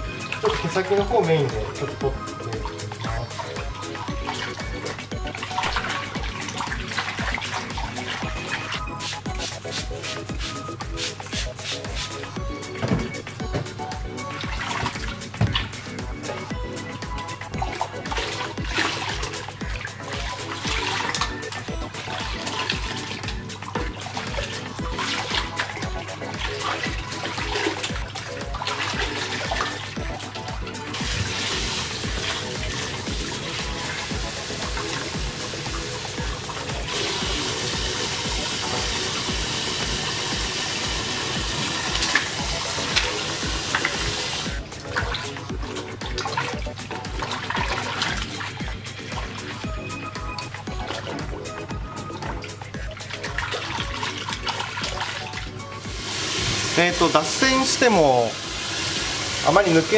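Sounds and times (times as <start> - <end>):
background music with steady beat: 0.0 - 59.9
tap water running into basin: 0.0 - 59.9
water splashing and sloshing: 0.0 - 59.9.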